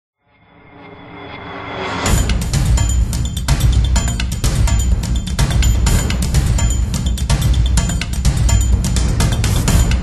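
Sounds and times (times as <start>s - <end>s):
intro theme music: 0.4s - 10.0s.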